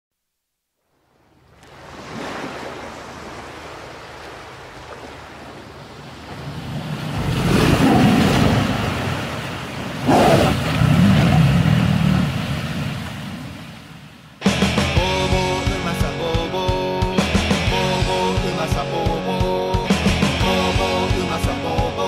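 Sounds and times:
ocean waves crashing: 0:01.1 - 0:16.0.

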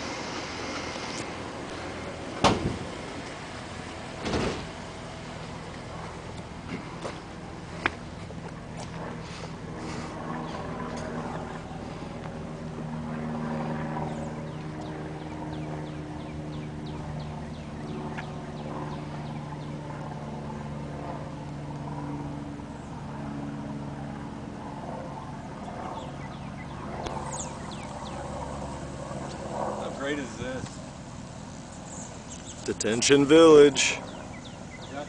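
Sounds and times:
vehicle engine idling: 0:00.0 - 0:13.2, 0:14.0 - 0:35.0
birds chirping: 0:03.8 - 0:12.5, 0:13.2 - 0:20.7, 0:25.6 - 0:35.0.

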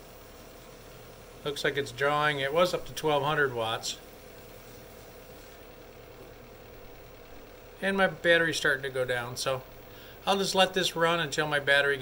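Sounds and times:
cooling fan hum: 0:00.0 - 0:12.0.

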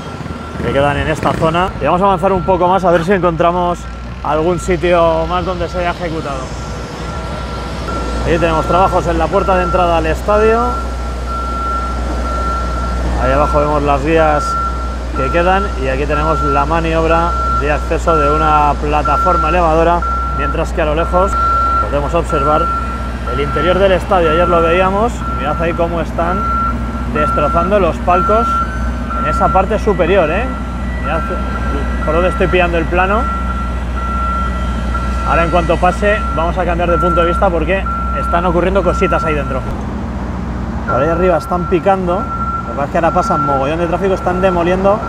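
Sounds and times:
high-pitched tone: 0:00.0 - 0:39.7, 0:40.9 - 0:45.0
diesel engine rumble: 0:00.0 - 0:45.0
high electronic alarm beep: 0:00.3 - 0:39.7, 0:40.9 - 0:45.0.

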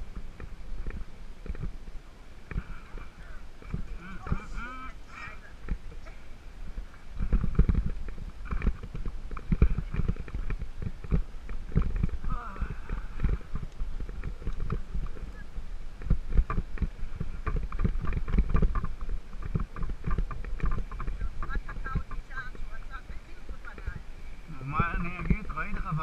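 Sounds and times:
bike rattling over ruts: 0:00.0 - 0:26.0.

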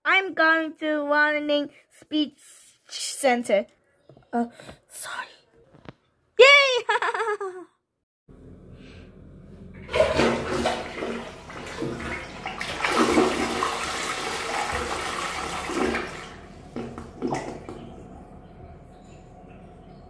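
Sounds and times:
toilet flushing: 0:09.7 - 0:20.0.

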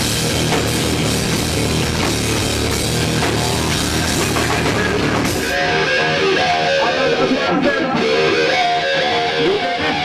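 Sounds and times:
electric guitar playing: 0:00.0 - 0:10.0
live rock band: 0:00.0 - 0:10.0.

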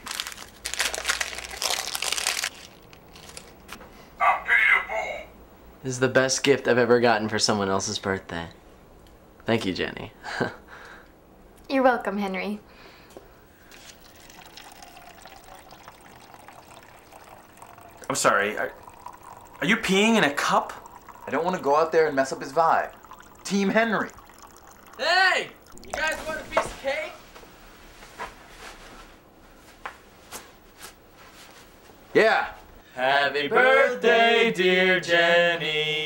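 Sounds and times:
wrapping paper crinkling: 0:00.0 - 0:03.7
liquid trickling into cup: 0:13.6 - 0:26.8.

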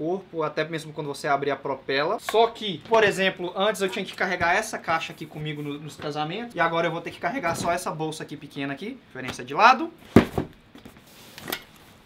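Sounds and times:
heavy thump: 0:10.1 - 0:10.6
cases knocking on a table: 0:10.2 - 0:10.6.

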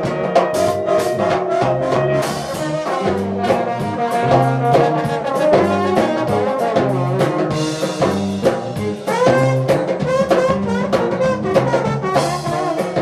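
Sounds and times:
brass band jazz with trombones: 0:00.0 - 0:13.0
drum kit: 0:00.0 - 0:13.0.

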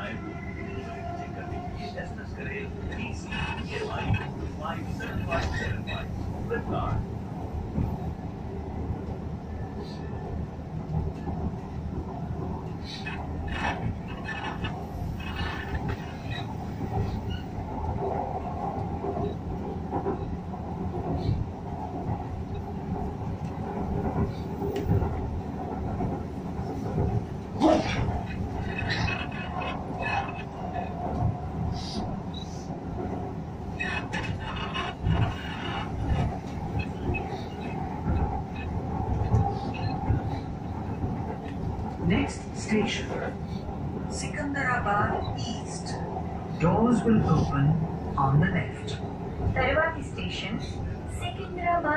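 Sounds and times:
train wheels and motors rumbling: 0:00.0 - 0:51.9.

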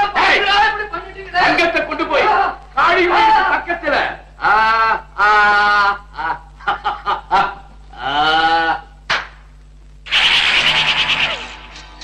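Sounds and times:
man snickering: 0:05.4 - 0:08.8
brief sharp sound: 0:10.1 - 0:12.0.

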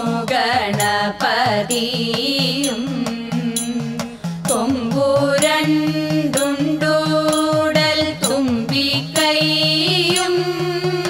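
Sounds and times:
drum beat: 0:00.0 - 0:11.0
women's chorus singing: 0:00.0 - 0:11.0.

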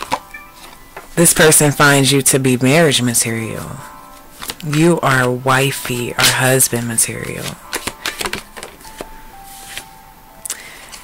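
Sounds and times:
cards shuffling: 0:00.0 - 0:01.2, 0:04.1 - 0:09.9
soft background music: 0:00.0 - 0:11.0.

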